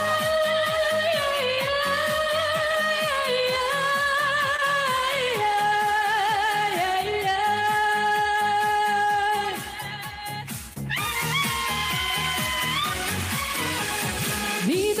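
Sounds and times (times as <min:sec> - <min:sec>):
pop backing track with drums: 0:00.0 - 0:15.0
woman singing with vibrato: 0:00.0 - 0:15.0.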